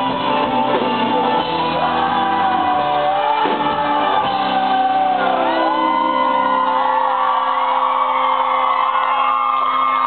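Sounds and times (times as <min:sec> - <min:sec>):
crowd cheering and whooping: 0:00.0 - 0:10.0.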